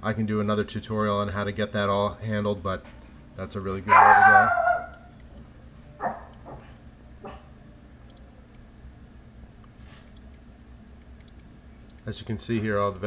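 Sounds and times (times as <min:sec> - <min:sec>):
low steady hum: 0:00.0 - 0:13.0
dog yipping: 0:03.9 - 0:05.1, 0:06.0 - 0:06.6.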